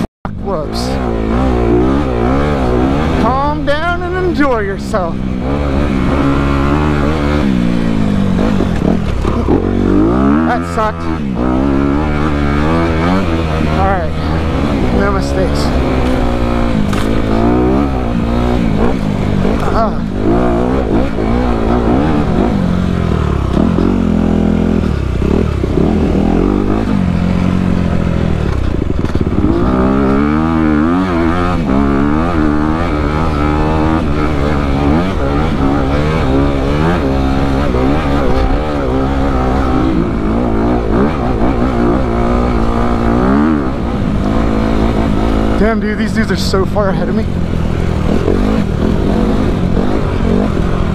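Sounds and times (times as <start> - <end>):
dirt bike engine revving: 0.0 - 50.9.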